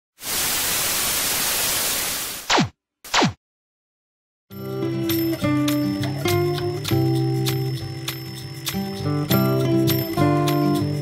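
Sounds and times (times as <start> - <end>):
television static hiss: 0.2 - 2.4.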